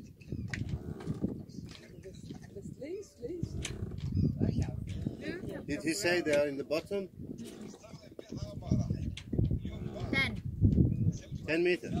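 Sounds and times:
wind buffeting microphone: 0.0 - 12.0
indistinct voices: 3.3 - 6.4, 7.2 - 10.4.

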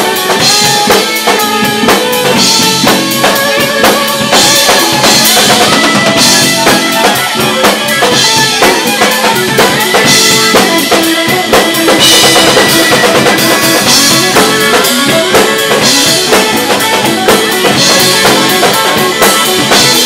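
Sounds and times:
bass guitar: 0.0 - 20.0
bowed violin: 0.0 - 20.0
drum kit beat: 0.0 - 20.0
electric guitar: 0.0 - 20.0.

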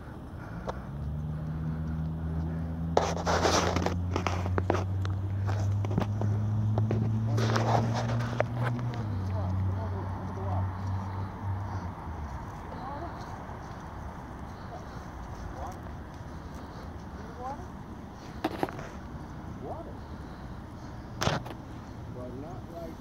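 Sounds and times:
open-air background noise: 0.0 - 23.0.

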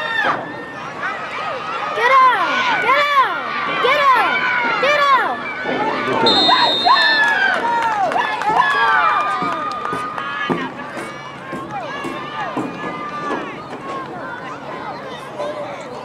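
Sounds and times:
spectators shouting: 0.0 - 16.0.

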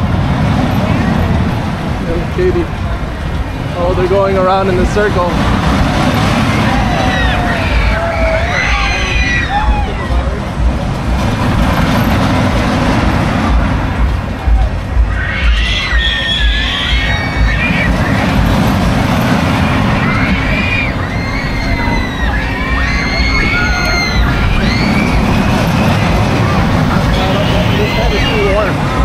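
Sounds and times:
crowd noise: 0.0 - 29.0
wind rumble on microphone: 0.0 - 29.0
riders screaming: 6.0 - 10.4, 14.4 - 29.0.

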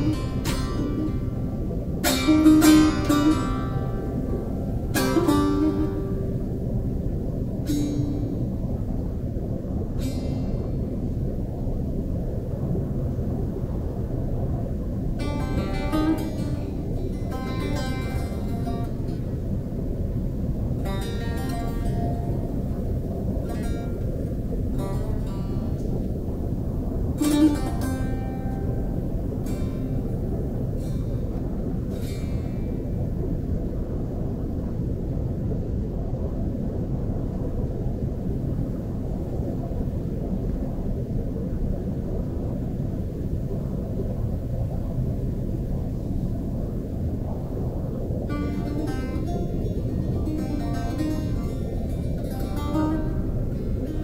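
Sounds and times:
plucked string instrument: 0.0 - 8.6, 15.2 - 19.4, 20.7 - 26.0, 27.2 - 32.9, 48.3 - 54.0
continuous low rumble: 0.0 - 54.0.

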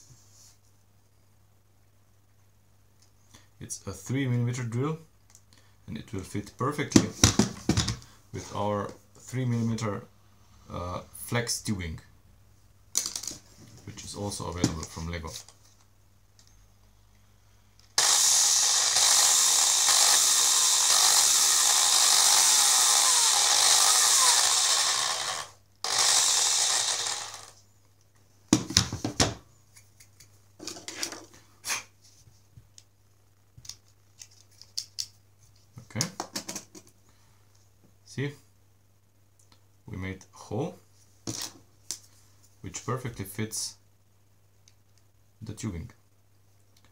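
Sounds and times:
electric drill boring plastic: 18.0 - 27.6.

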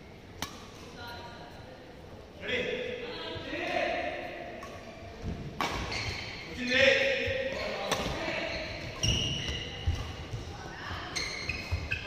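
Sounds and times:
racket striking shuttlecock: 0.4 - 0.9, 5.6 - 5.9, 8.9 - 10.5.

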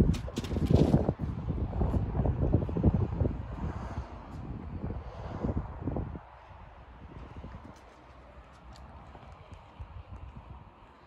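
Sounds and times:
footsteps on wet asphalt: 7.1 - 10.3.

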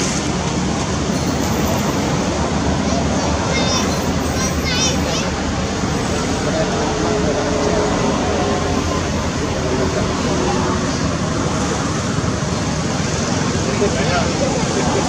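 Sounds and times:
steady outdoor background noise: 0.0 - 15.0.

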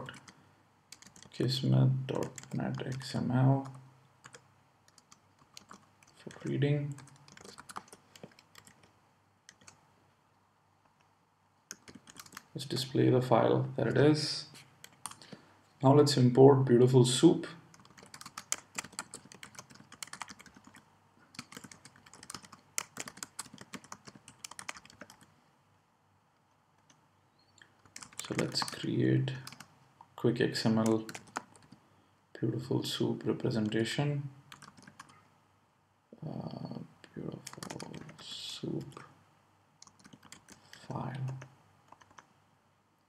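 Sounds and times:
typing on computer keyboard: 0.0 - 0.3, 0.9 - 1.4, 2.1 - 8.9, 9.5 - 9.8, 11.7 - 12.6, 17.7 - 25.3, 27.8 - 28.8, 29.4 - 29.7, 30.8 - 31.8, 34.5 - 35.2, 37.3 - 39.1, 39.8 - 42.3.

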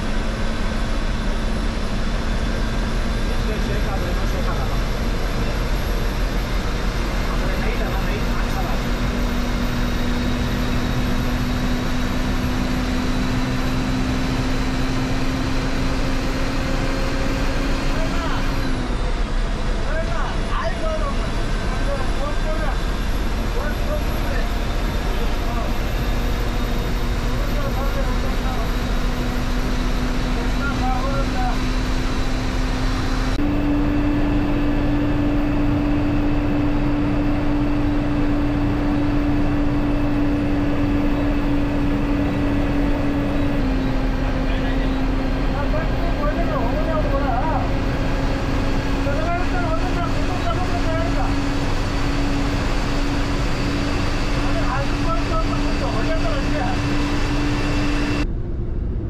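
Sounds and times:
bus diesel engine drone: 0.0 - 59.0
road noise: 0.0 - 59.0.

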